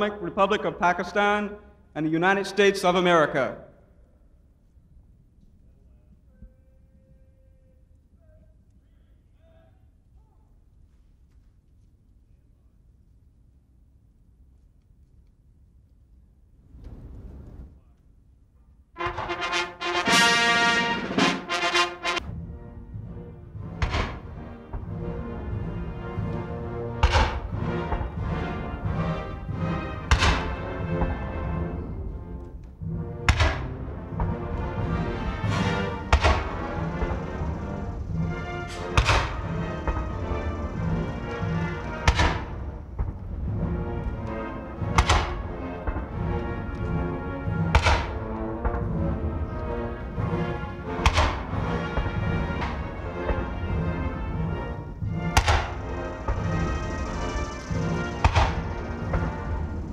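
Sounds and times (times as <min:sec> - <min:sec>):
military brass band playing: 0:19.0 - 0:59.9
salute cannons firing: 0:23.7 - 0:24.9, 0:26.9 - 0:28.3, 0:29.7 - 0:31.4, 0:33.2 - 0:43.4, 0:44.0 - 0:49.1, 0:49.7 - 0:59.8
drum or cymbal strokes: 0:55.1 - 0:59.9.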